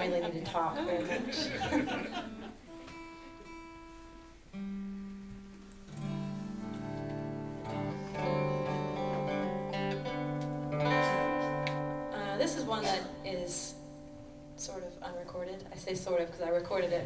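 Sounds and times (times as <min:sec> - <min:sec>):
acoustic guitar strings plucked: 0:02.3 - 0:14.7.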